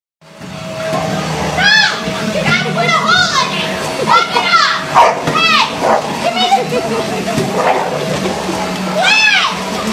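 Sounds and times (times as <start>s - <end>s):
vacuum cleaner humming: 0.2s - 9.9s.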